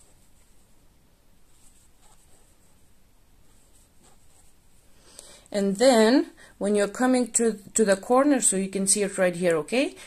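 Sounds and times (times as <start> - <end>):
yarn rustling through crochet stitches: 0.0 - 5.0.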